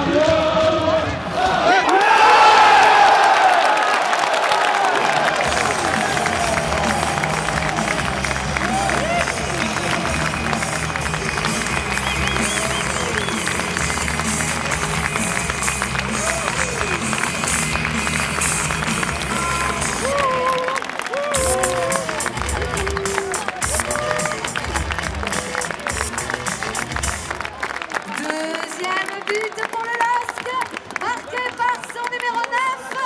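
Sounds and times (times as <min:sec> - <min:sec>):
music over loudspeakers: 0:00.0 - 0:01.3, 0:05.4 - 0:20.5, 0:21.3 - 0:27.5
crowd chanting: 0:00.0 - 0:15.4
stadium crowd cheering and clapping: 0:00.0 - 0:33.0.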